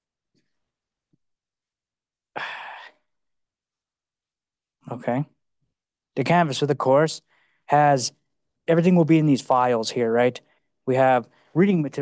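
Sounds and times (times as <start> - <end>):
person sighing: 2.3 - 3.1.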